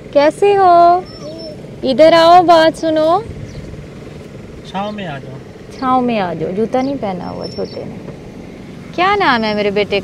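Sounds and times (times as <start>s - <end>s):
car engine idling: 0.0s - 10.0s
woman calling: 0.1s - 3.3s, 5.7s - 8.0s, 9.0s - 10.0s.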